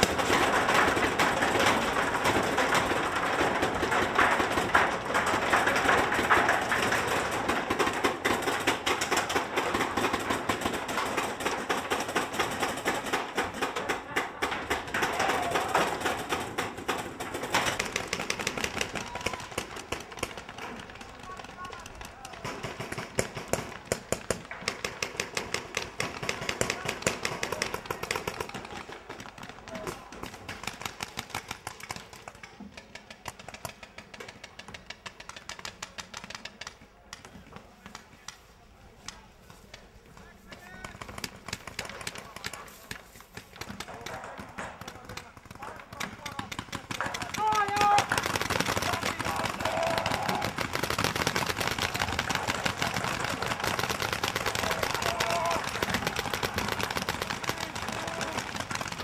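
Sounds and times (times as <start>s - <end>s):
paintball markers firing: 0.0s - 59.0s
players' voices: 0.0s - 59.0s.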